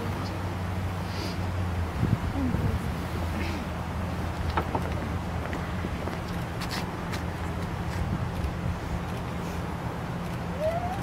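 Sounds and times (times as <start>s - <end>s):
wind rumble on microphone: 1.6s - 11.0s.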